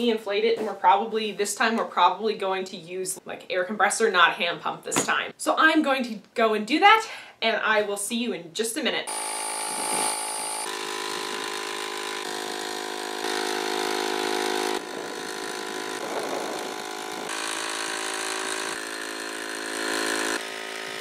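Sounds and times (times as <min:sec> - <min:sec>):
air compressor motor hum: 0:09.1 - 0:21.0.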